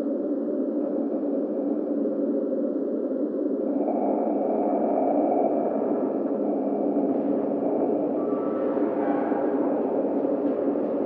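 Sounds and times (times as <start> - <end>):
dense low hum: 0.1 - 11.0
faint drawn-out tones: 0.8 - 11.0.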